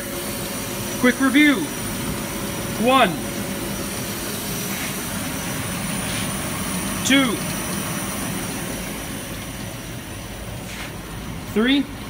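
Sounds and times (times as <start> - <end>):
extraction vent whirring: 0.0 - 12.0.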